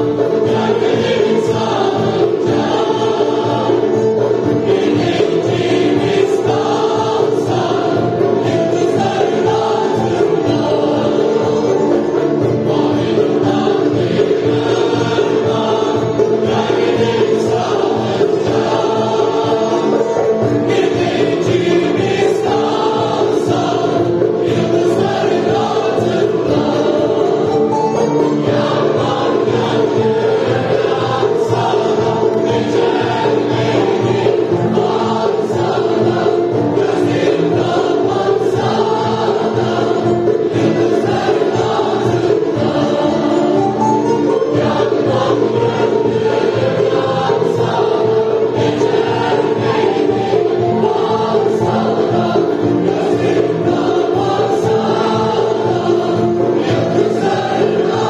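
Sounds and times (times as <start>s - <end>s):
mixed choir singing: 0.0s - 58.0s.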